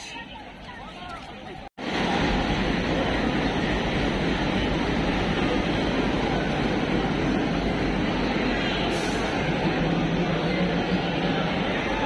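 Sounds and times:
locomotive engine rumbling: 1.5 - 12.0.

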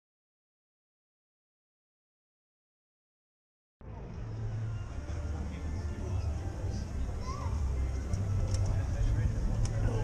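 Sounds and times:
faint town background hiss: 3.8 - 10.0
low street rumble: 3.8 - 10.0.

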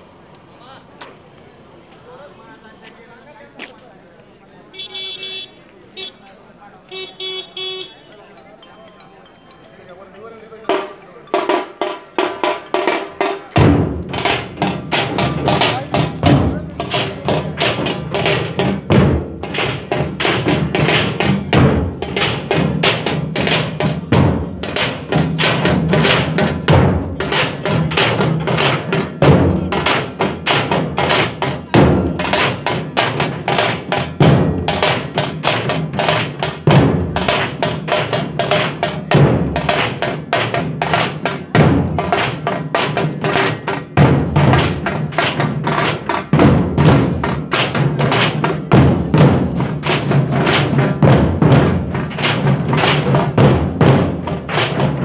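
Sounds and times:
barrel drums beaten with sticks: 10.6 - 55.0.

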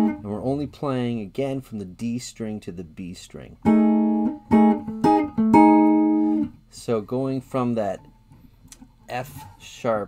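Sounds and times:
electric guitar strumming: 0.0 - 0.2, 3.6 - 6.6.

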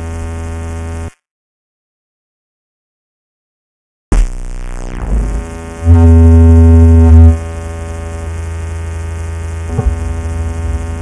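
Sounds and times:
low synthesizer bass drone: 4.2 - 11.0.

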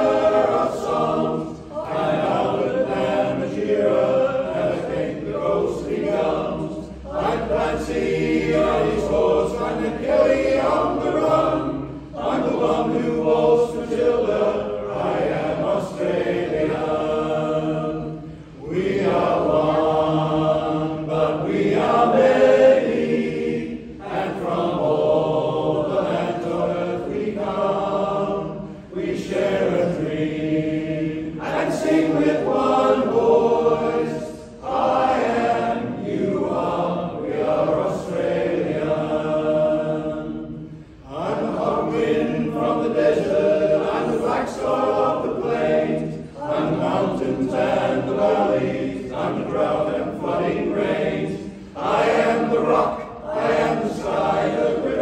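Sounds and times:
men's chorus singing a cappella: 0.0 - 55.0.

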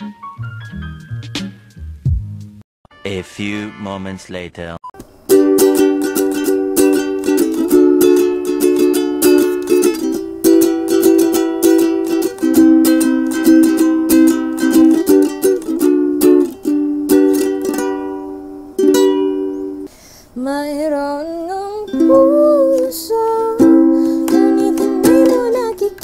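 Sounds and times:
ukulele strumming chords: 5.0 - 19.9, 21.6 - 26.0.

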